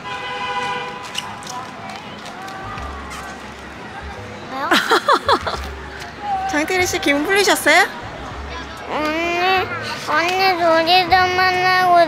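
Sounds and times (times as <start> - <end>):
faint background music: 0.9 - 12.0.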